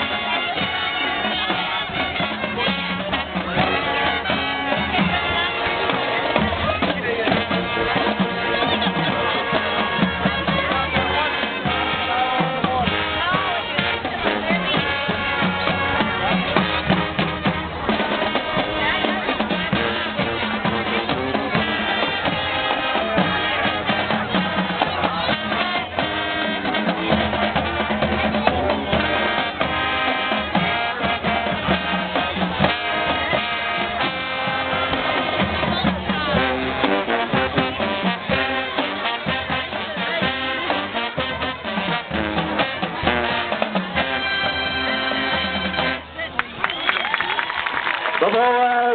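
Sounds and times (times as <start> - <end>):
bass drums: 0.0 - 46.3
marching band playing: 0.0 - 48.9.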